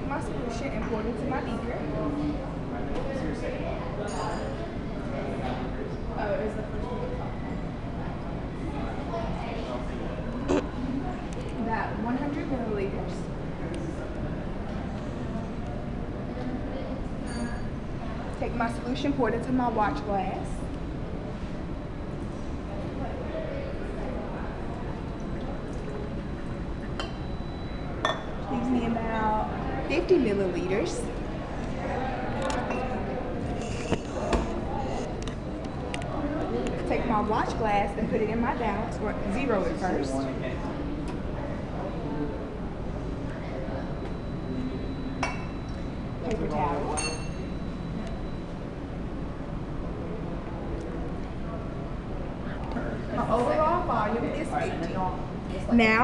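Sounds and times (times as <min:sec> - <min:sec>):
glass beaker clinking on metal: 0:17.2 - 0:17.7, 0:47.0 - 0:47.5.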